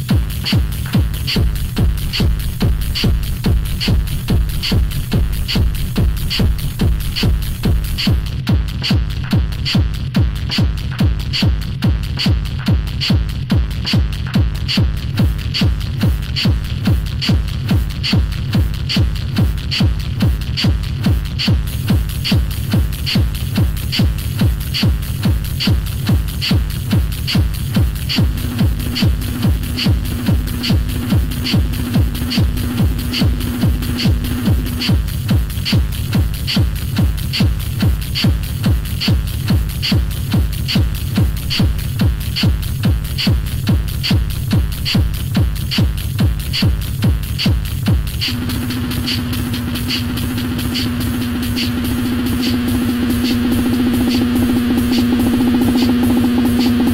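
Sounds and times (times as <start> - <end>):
four-on-the-floor kick drum: 0.0 - 56.9
offbeat hi-hats: 0.0 - 56.9.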